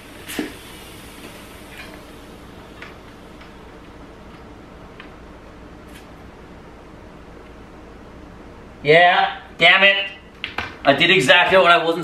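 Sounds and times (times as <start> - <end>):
air hissing from inner tube: 0.0 - 3.4.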